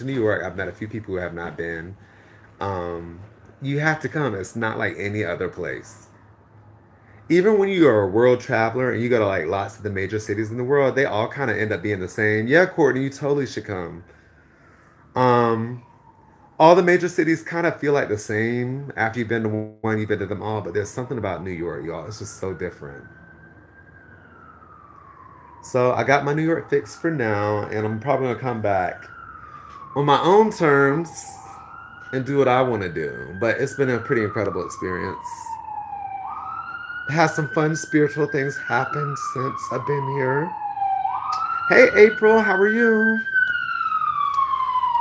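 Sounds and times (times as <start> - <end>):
faint siren wailing: 0.0 - 45.0.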